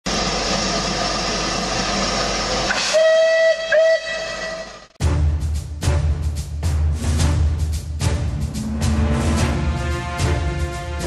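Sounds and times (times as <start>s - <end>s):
steam whistle blasts: 2.7s - 4.9s.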